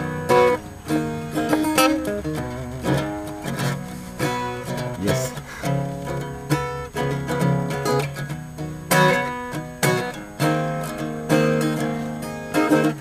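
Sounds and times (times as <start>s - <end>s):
acoustic guitar strumming and plucking: 0.0s - 13.0s.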